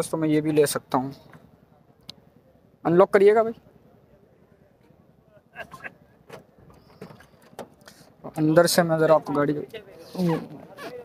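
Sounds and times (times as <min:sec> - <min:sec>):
faint voices: 0:03.6 - 0:11.0.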